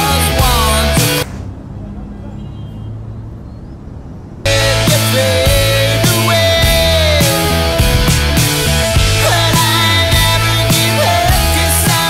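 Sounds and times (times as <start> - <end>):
rock song: 0.0 - 1.2, 4.5 - 12.0
distant traffic rumble: 0.1 - 12.0.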